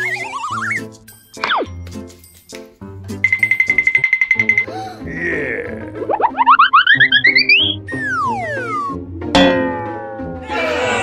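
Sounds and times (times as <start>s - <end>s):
background music: 0.0s - 11.0s
short notes climbing in pitch: 6.1s - 11.0s
cartoon whoosh: 6.7s - 9.0s.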